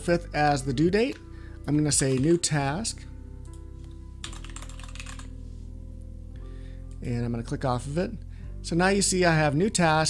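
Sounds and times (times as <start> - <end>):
typing on a computer keyboard: 4.2 - 5.3.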